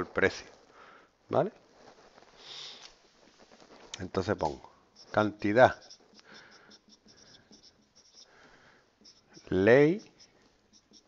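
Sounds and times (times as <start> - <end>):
nose sniff: 2.4 - 2.9.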